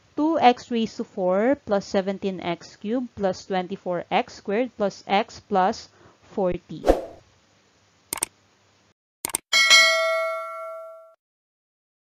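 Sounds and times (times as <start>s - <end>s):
notification bell chime: 9.6s - 11.2s.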